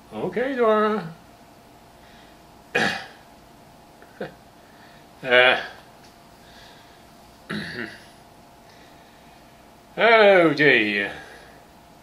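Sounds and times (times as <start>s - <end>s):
man coughing: 2.7s - 3.2s, 7.5s - 8.1s.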